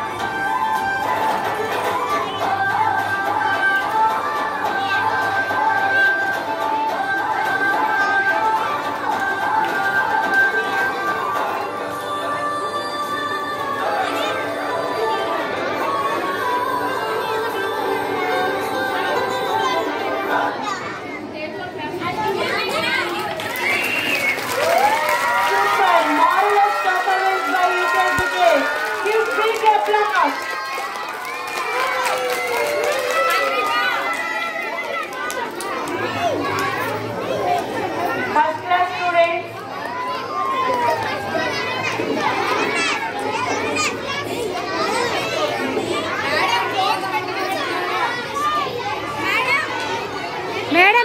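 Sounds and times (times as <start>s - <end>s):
children talking and calling: 0.0s - 51.0s.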